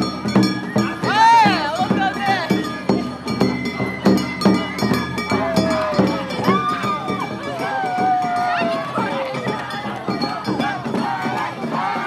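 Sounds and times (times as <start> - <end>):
clanking metal percussion: 0.0 - 12.0
hand drums struck: 0.0 - 12.0
crowd shouting: 0.2 - 12.0.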